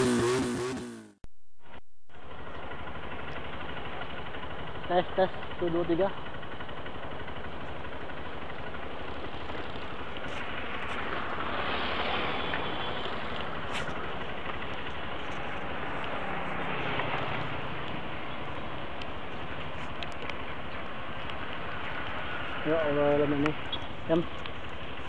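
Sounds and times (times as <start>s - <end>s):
motorcycle engine running: 0.0s - 1.2s, 2.1s - 25.0s
wind and road noise: 2.1s - 25.0s.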